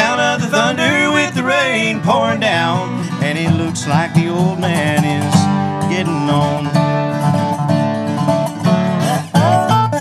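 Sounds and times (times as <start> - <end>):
man singing: 0.0 - 7.0
strummed acoustic guitar: 0.0 - 10.0.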